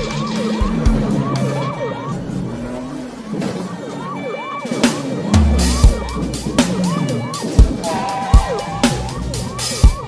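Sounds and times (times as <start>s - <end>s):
car moving: 0.0s - 10.0s
police siren sweeping: 0.0s - 10.0s.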